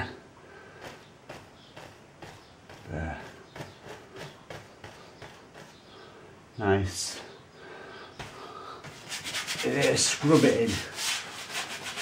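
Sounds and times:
brush strokes on canvas: 0.8 - 5.9, 8.8 - 12.0.

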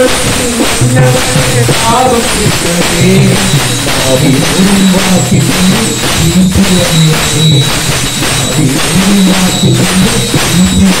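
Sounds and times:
men singing in a group: 0.0 - 11.0
metallic jingle: 0.0 - 11.0
percussion: 0.0 - 11.0.

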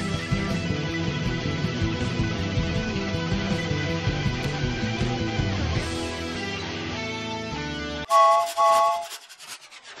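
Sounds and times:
fast scratchy crackle: 8.1 - 10.0.

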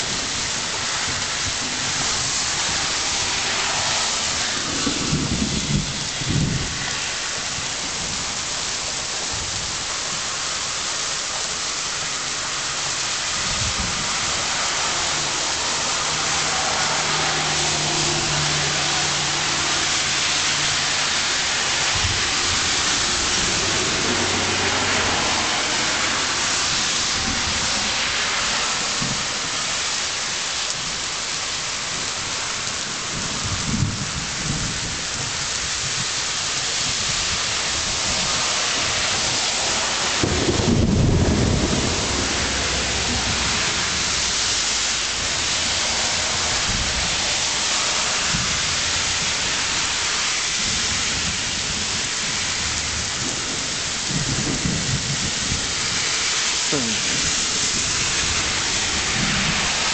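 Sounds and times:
thunder rumbling: 0.0 - 8.3, 37.8 - 47.6, 50.6 - 56.1
hard rain falling: 0.0 - 59.9.

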